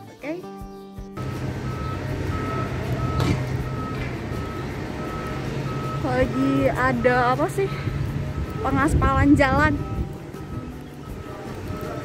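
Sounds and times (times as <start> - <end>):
reversing alarm beeping: 1.2 - 12.0
vehicle engine running: 1.2 - 12.0.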